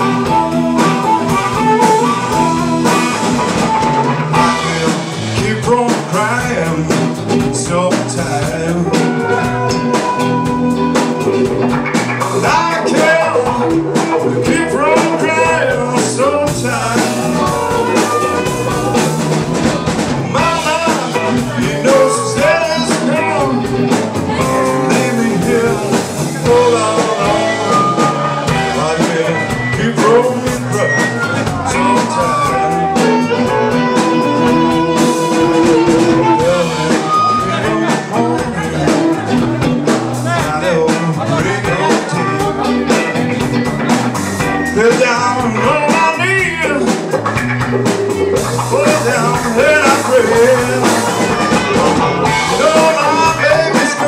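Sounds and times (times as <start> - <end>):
amplified harmonica bending notes: 0.0 - 5.0, 9.0 - 11.9, 26.5 - 38.4
drum kit: 0.0 - 54.0
electric guitar: 0.0 - 54.0.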